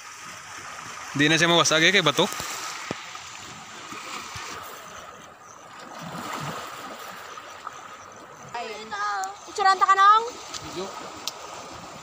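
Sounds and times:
sea water lapping on rocks: 0:00.0 - 0:12.0.

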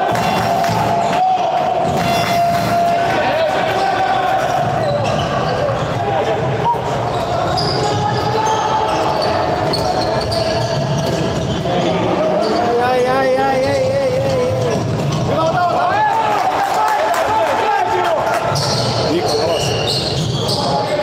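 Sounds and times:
crowd noise: 0:00.0 - 0:21.0.

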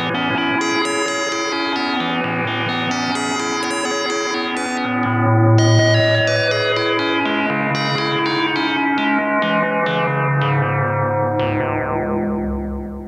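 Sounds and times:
synthesizer repeating note run: 0:00.2 - 0:08.7
sustained synth bass: 0:02.7 - 0:08.4.

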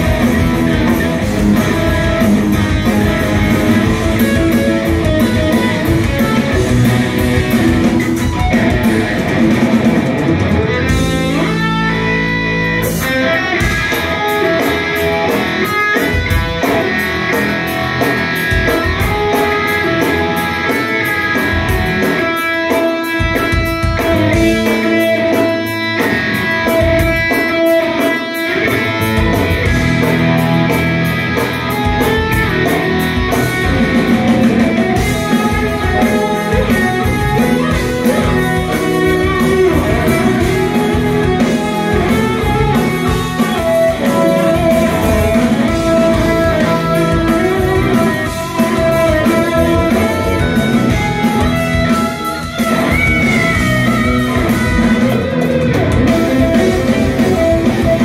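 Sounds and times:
live rock band playing: 0:00.0 - 0:58.0.

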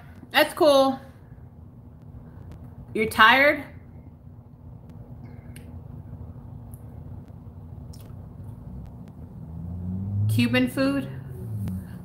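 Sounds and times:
low hum: 0:03.7 - 0:12.0.

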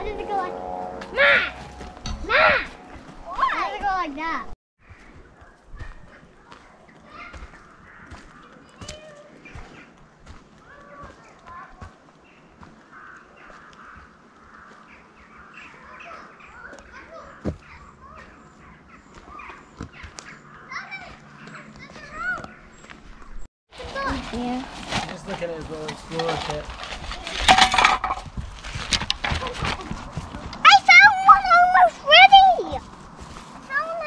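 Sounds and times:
children calling and chattering: 0:00.0 - 0:23.0, 0:29.2 - 0:34.0
footsteps on woodland path: 0:00.0 - 0:27.4, 0:28.1 - 0:34.0.

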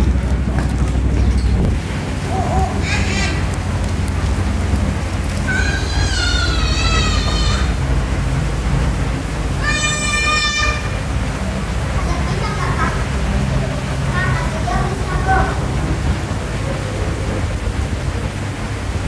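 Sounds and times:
dense low rumble: 0:00.0 - 0:19.0
child calling: 0:02.2 - 0:03.6, 0:05.4 - 0:07.8, 0:09.6 - 0:11.0, 0:12.0 - 0:13.1.

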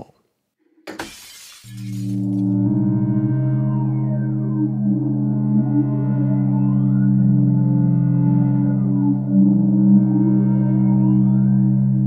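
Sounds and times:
brief crashing noise: 0:00.9 - 0:02.4
synthesizer low chord: 0:01.9 - 0:12.0.

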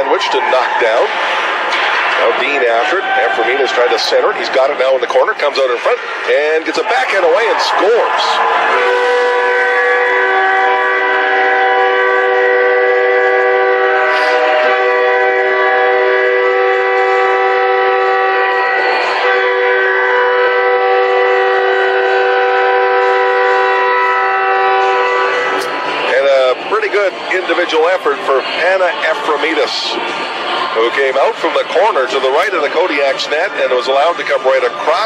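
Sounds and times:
goal horn chord: 0:08.4 - 0:29.2.

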